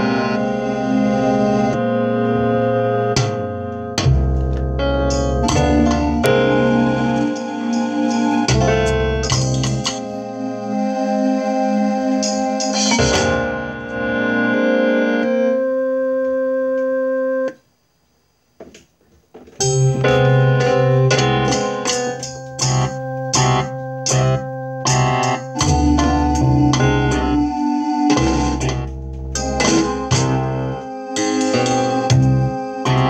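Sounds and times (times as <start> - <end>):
low piano bass notes: 0.0 - 17.5, 19.6 - 33.0
electronic keyboard chords: 0.0 - 17.8, 19.5 - 33.0.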